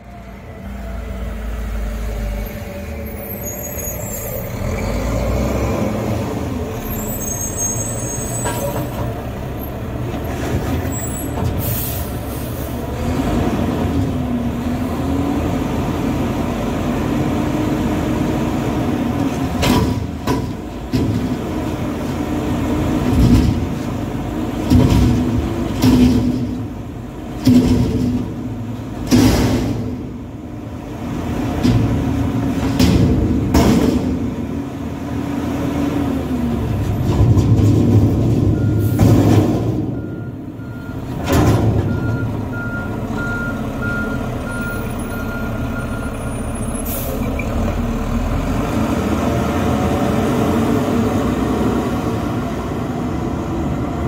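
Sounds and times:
garbage truck diesel engine: 0.0s - 54.0s
reversing beeper: 41.8s - 47.3s.

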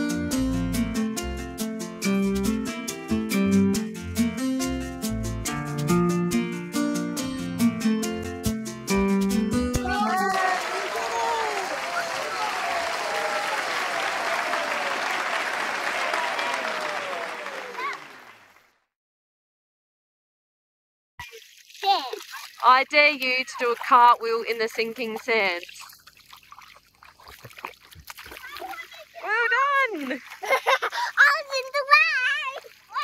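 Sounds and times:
crowd cheering and clapping: 9.8s - 18.7s
girl talking: 21.8s - 22.3s, 28.4s - 29.9s, 31.1s - 33.0s.

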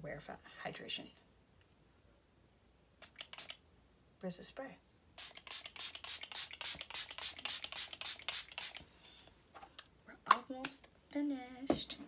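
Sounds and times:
spray bottle hissing: 3.0s - 3.6s, 5.2s - 8.8s.

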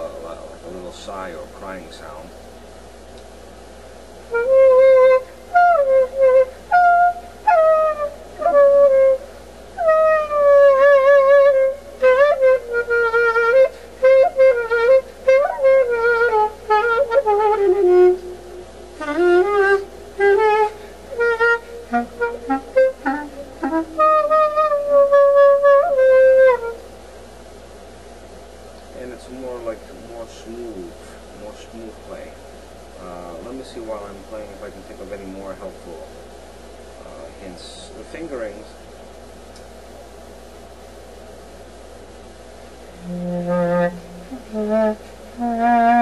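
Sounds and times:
solo clarinet folk melody: 4.3s - 26.8s, 42.9s - 46.0s.

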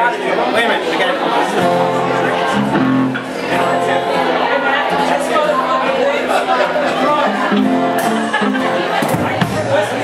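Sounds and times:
crowd chatter: 0.0s - 10.0s
acoustic guitar notes: 1.3s - 10.0s.

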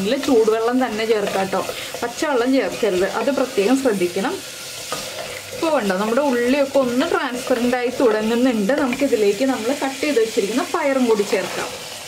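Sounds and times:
wooden spatula stirring: 0.0s - 4.1s
shallots sizzling in oil: 0.0s - 12.0s.

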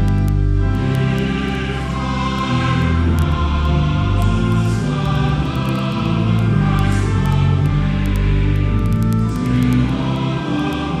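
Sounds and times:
choir singing held chords: 0.6s - 11.0s.

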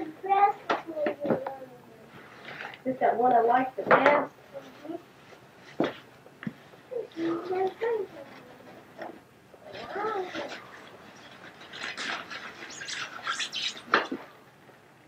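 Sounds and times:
paper and packaging rustling: 9.7s - 14.2s.

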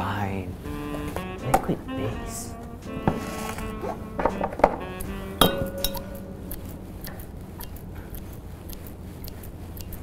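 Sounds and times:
background music: 0.0s - 8.2s
glass beaker clinking: 5.4s - 6.2s.

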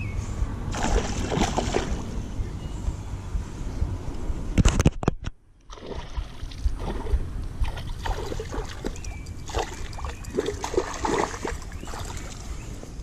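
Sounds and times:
low rumble: 0.0s - 4.6s, 5.7s - 13.0s.

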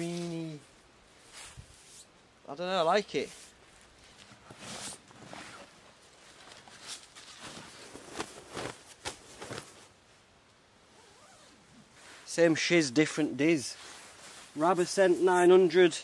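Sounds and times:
sleeping bag fabric swishing: 4.4s - 10.0s, 13.7s - 15.2s.

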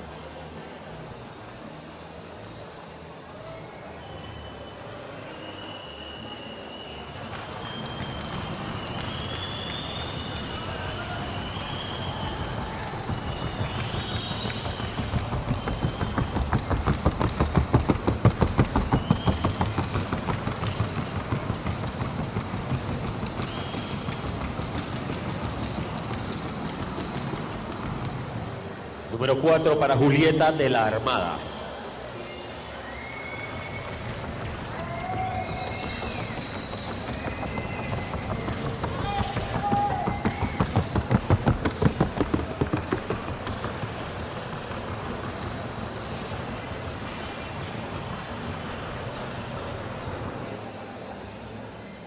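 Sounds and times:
rapid hoofbeats on track: 7.3s - 28.6s, 33.2s - 49.2s.

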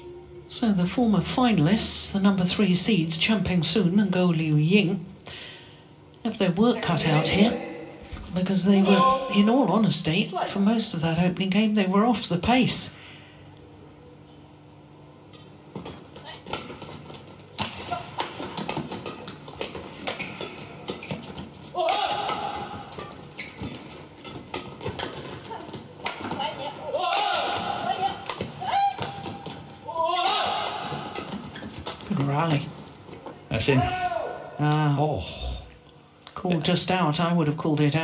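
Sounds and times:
shoes squeaking on court: 16.2s - 21.7s, 22.4s - 26.8s, 30.7s - 33.2s
players shouting: 21.7s - 23.0s, 26.6s - 31.2s.

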